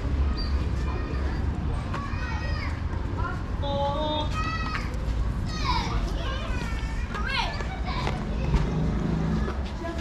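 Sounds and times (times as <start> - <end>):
children calling and shouting: 0.0 - 10.0.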